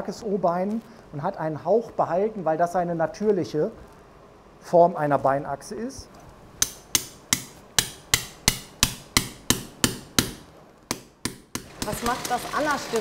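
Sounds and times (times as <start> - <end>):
mallet tapping on metal impactor: 6.6 - 12.0.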